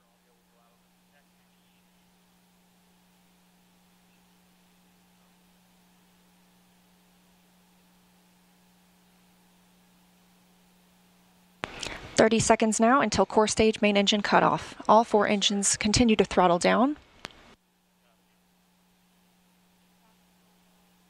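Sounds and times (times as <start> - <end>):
faint steady hiss: 0.0 - 21.0
low steady hum: 0.0 - 21.0
commentator speaking: 12.2 - 17.0.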